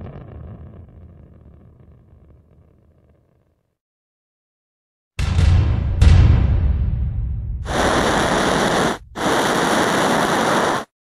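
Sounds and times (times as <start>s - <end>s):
thruster rushing hiss: 7.7s - 10.9s.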